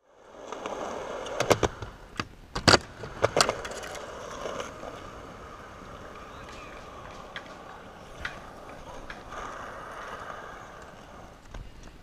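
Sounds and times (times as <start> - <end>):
skateboard wheels rolling: 0.0 - 12.0
skateboard clacks: 0.3 - 12.0.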